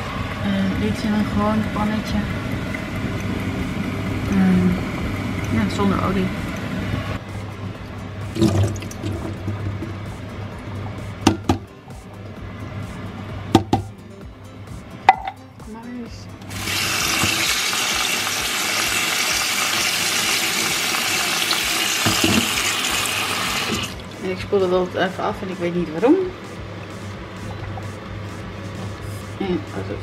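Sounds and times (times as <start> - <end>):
tap water running: 0.8 - 7.2, 7.8 - 11.6, 16.4 - 24.4.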